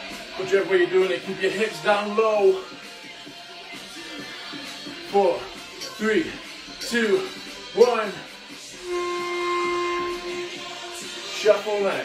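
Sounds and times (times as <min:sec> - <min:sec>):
background music: 0:00.0 - 0:12.0
steady whistle: 0:08.8 - 0:11.7.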